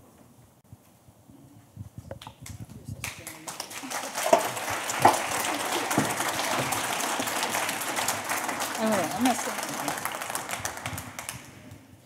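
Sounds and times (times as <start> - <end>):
audience applauding: 3.0 - 11.8.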